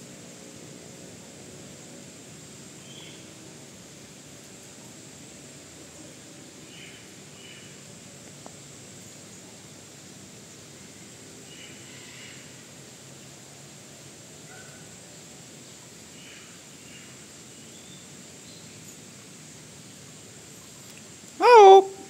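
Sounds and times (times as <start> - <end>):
steady background hiss: 0.0 - 22.0.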